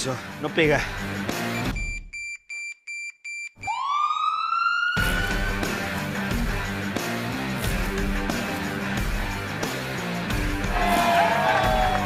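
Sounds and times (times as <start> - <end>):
short electronic beeps: 1.5 - 3.8
trailer music with guitar: 5.0 - 12.0.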